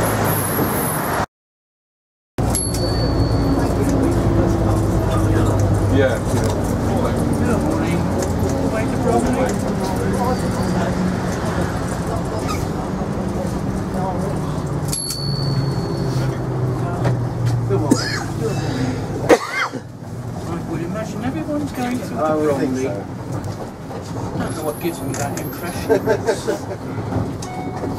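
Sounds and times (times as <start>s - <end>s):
bus diesel engine running: 2.4s - 27.9s
passengers talking: 2.4s - 27.9s.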